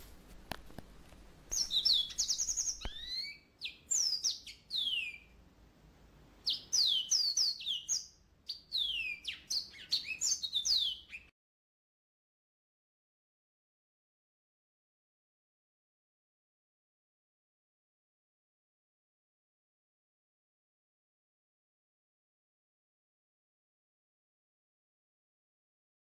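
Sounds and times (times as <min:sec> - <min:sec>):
songbird chirping: 0:01.5 - 0:05.4, 0:06.4 - 0:11.3.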